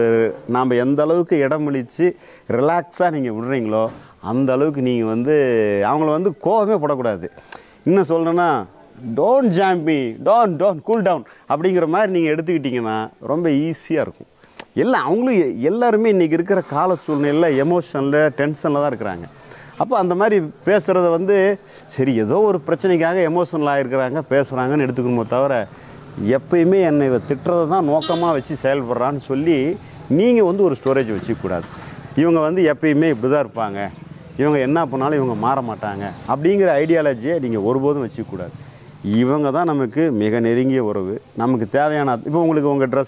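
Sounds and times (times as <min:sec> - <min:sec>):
crickets droning: 0:00.0 - 0:43.0
man talking: 0:00.0 - 0:43.0.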